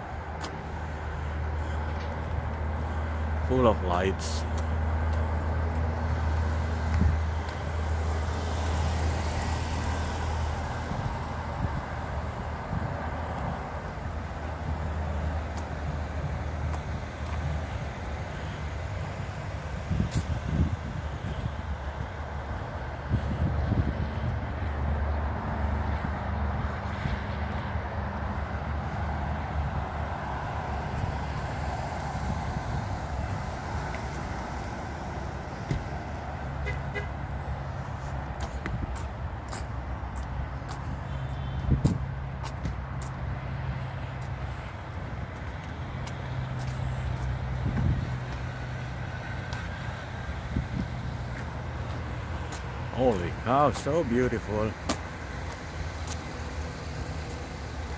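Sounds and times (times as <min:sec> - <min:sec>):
car engines and road noise: 0:00.0 - 0:57.9.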